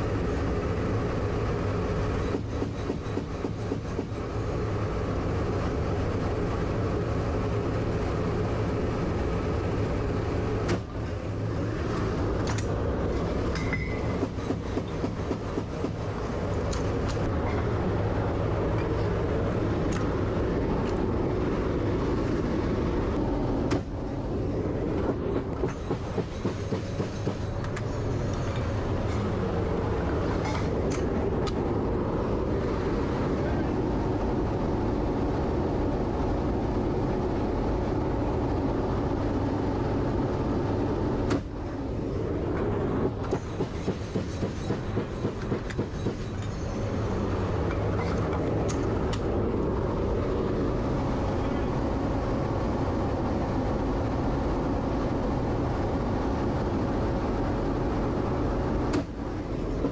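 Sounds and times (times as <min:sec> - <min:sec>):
turboprop engines droning: 0:00.0 - 0:59.9.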